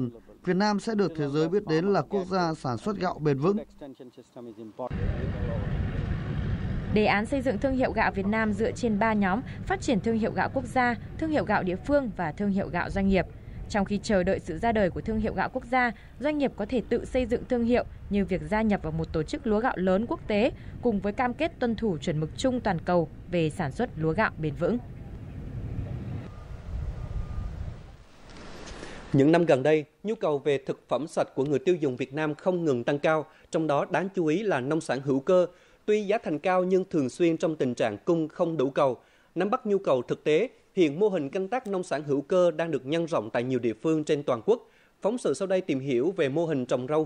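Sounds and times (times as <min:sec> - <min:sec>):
low engine rumble: 0:04.9 - 0:28.0
faint steady high tone: 0:26.2 - 0:28.0.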